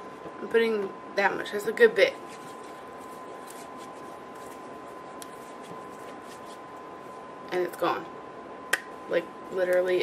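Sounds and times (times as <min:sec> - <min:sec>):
soft skin rubbing: 0:02.1 - 0:07.2.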